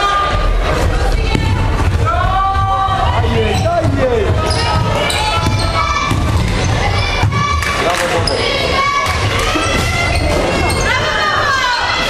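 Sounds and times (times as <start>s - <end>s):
sneakers squeaking: 3.5s - 11.5s
basketball bouncing: 3.6s - 7.7s.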